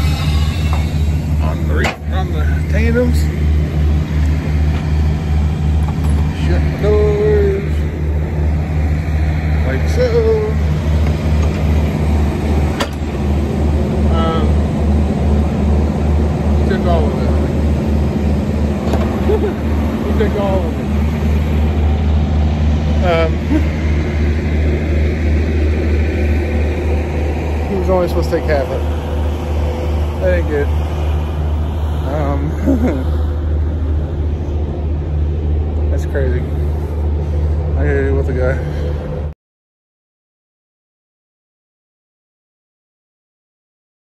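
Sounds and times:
diesel engine idling: 0.0s - 39.4s.

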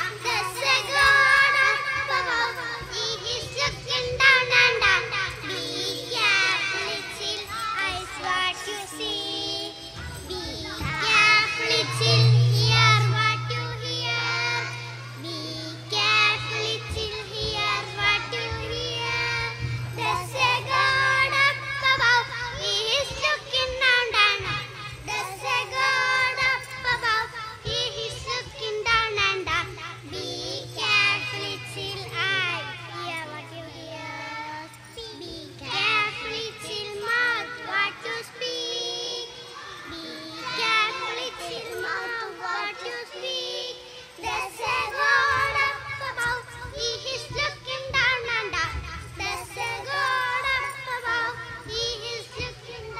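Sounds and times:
girls singing through microphones: 0.0s - 52.9s
steady low hum: 0.0s - 52.9s.

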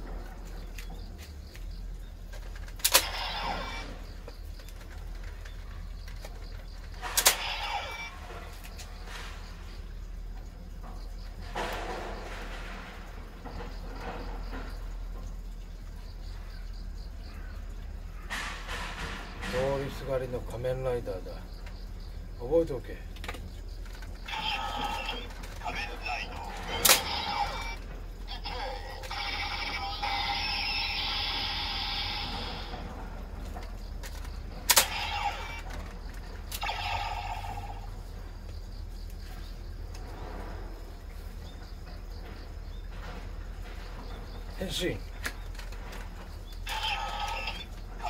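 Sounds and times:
synthesized electronic voice call: 24.2s - 32.7s, 46.7s - 47.7s.

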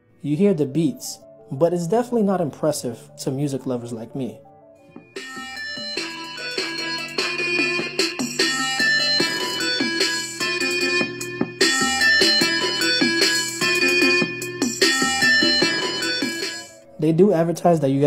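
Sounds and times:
thin music from small speaker: 0.0s - 18.0s.

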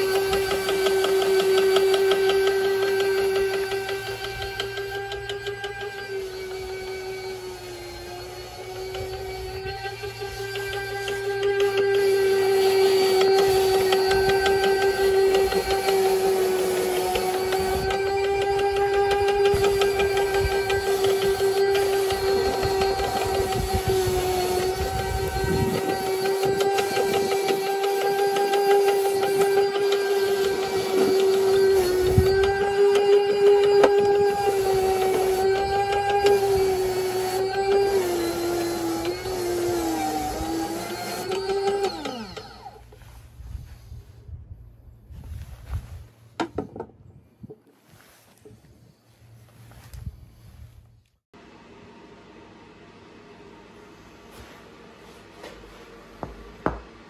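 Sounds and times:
electric motor whining: 0.0s - 43.2s
boot sole scrubbed on brush: 47.7s - 51.0s.

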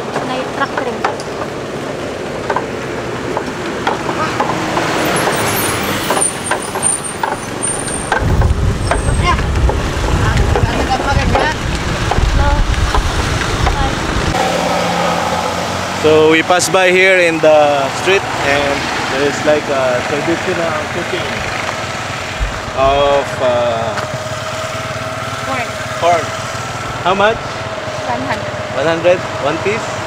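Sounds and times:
road traffic: 0.0s - 30.0s
wooden cart knocking and clattering: 2.3s - 14.1s
heavy low rumble: 8.2s - 17.0s, 22.2s - 25.0s.

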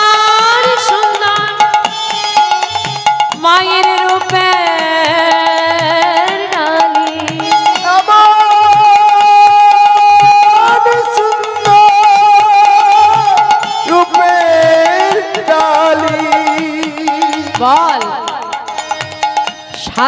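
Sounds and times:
drum and percussion beat: 0.0s - 20.0s
woman singing devotional song: 0.0s - 20.0s.

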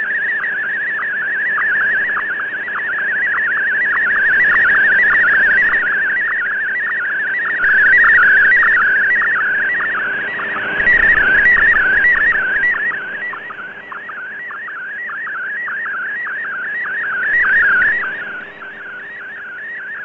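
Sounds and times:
warbling radio data tone: 0.0s - 20.0s.

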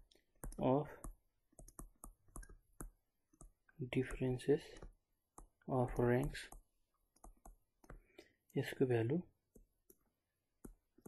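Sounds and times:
stylus tapping on touchscreen: 0.3s - 8.6s, 9.5s - 11.0s.

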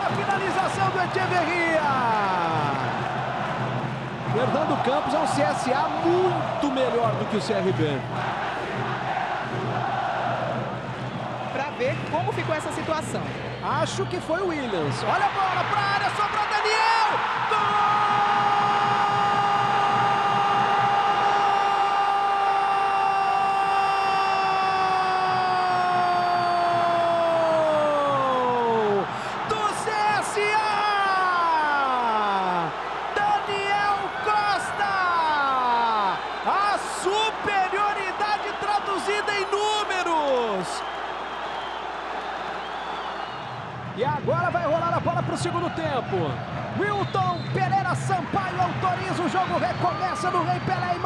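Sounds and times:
stadium crowd noise: 0.0s - 51.0s.

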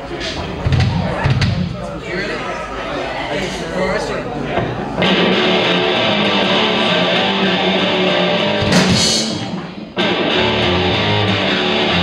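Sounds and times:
room chatter: 0.0s - 12.0s.

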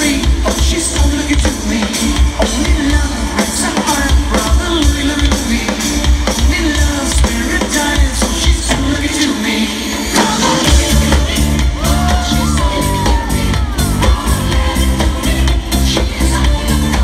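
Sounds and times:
drum kit beat: 0.0s - 17.0s
live band playing disco: 0.0s - 17.0s.

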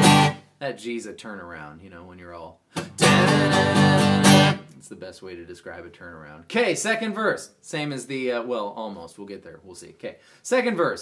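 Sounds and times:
acoustic guitar strumming: 0.0s - 0.4s, 2.8s - 4.7s.

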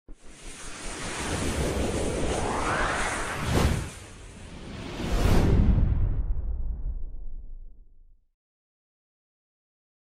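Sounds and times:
whooshing rush with low rumble: 0.1s - 8.0s.

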